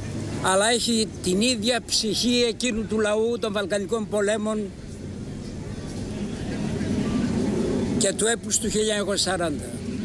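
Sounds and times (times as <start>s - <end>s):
low outdoor rumble: 0.0s - 10.0s.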